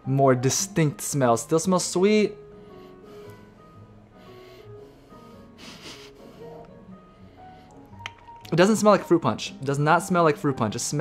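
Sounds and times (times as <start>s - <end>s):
quiet jazz music: 0.0s - 11.0s
person sniffing: 4.3s - 6.6s.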